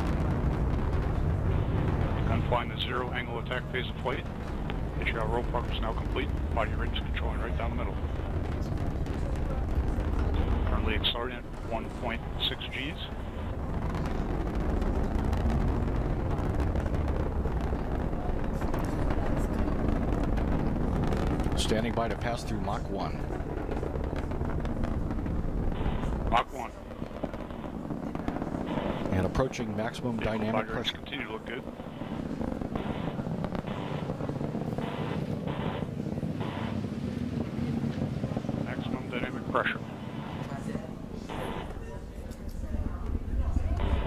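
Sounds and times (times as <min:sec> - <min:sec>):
rocket roaring: 0:00.0 - 0:44.0
radio hiss bursts: 0:41.3 - 0:41.8.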